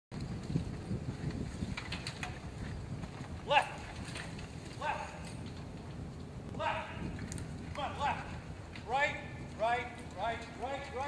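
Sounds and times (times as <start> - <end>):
pony hoofbeats on soft ground: 0.1 - 6.4.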